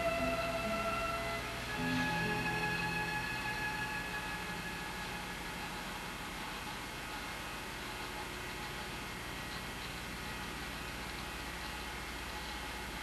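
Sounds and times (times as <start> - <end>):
low hum: 0.0 - 9.1
background music with held tones: 0.0 - 13.0
steady hiss: 0.0 - 13.0.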